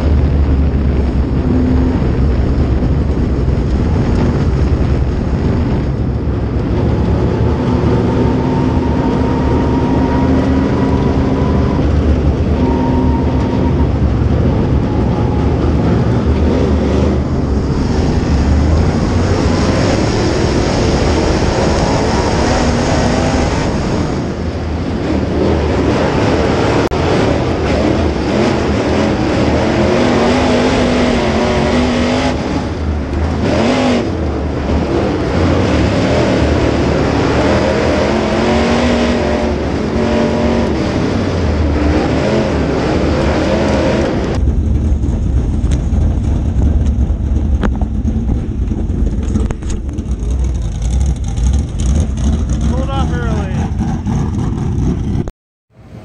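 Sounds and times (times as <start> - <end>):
race car engine revving: 0.0 - 56.0.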